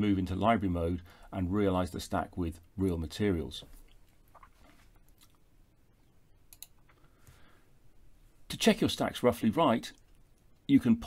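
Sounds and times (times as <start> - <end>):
faint computer mouse clicks: 6.5 - 7.4.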